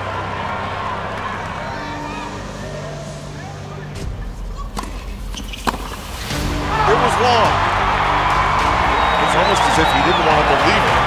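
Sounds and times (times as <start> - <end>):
low background music: 0.0 - 11.0.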